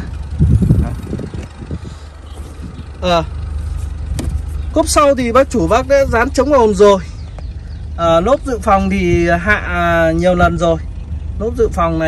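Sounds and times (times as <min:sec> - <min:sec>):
wind on microphone: 0:00.0 - 0:03.0.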